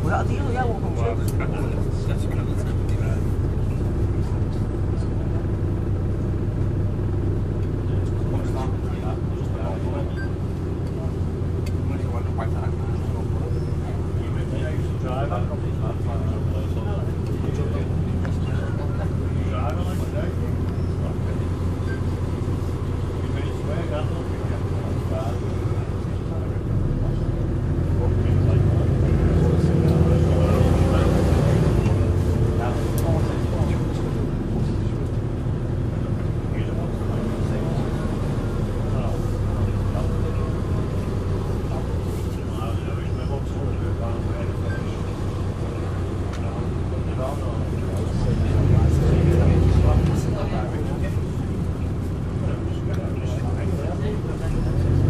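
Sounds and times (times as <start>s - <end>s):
bus diesel engine drone: 0.0s - 55.0s.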